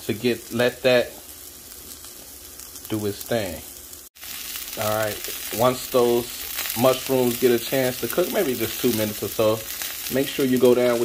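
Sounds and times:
mushrooms sizzling in a pan: 0.0 - 11.0.

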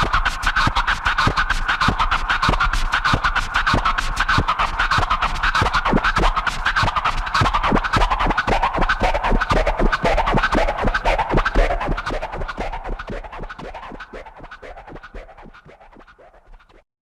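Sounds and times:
turntable scratching: 0.0 - 16.8
hip hop beat: 7.4 - 16.5.

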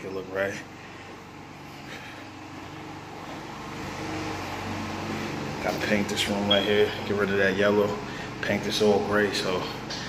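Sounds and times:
low mechanical hum: 0.0 - 10.0.

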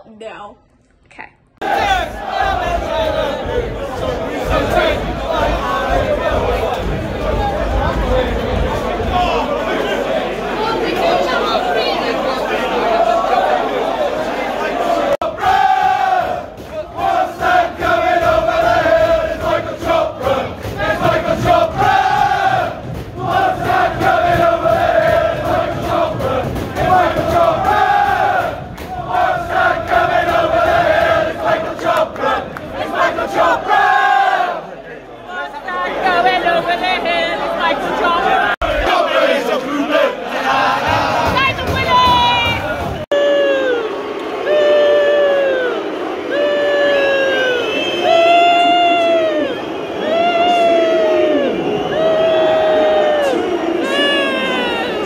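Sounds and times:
mix of voices: 0.0 - 55.0
crowd singing a chant: 1.6 - 54.2.

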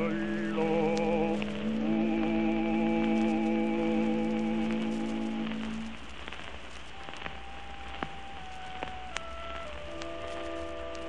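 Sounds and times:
record surface hiss and crackles: 0.0 - 11.0.

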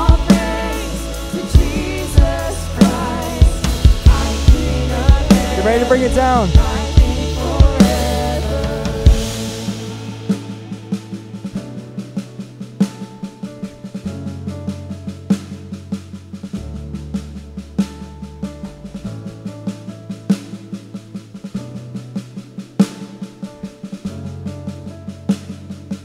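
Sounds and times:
electric bass long low notes: 0.0 - 11.8
sustained keyboard chords: 0.0 - 16.0
drum kit light snare strokes: 0.0 - 26.0.

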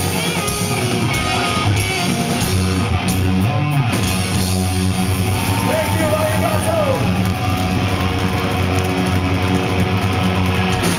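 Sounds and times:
live rock band playing: 0.0 - 10.9.

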